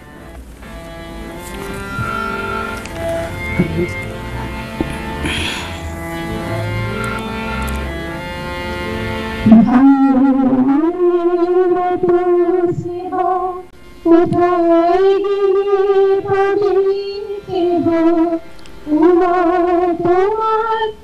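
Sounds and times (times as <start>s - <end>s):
instrumental music with bass line: 0.0s - 20.8s
woman singing into microphone: 9.4s - 21.0s.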